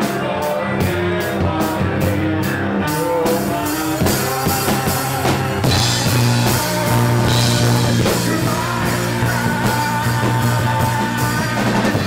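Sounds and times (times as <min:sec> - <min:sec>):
rock band playing loudly: 0:00.0 - 0:12.0.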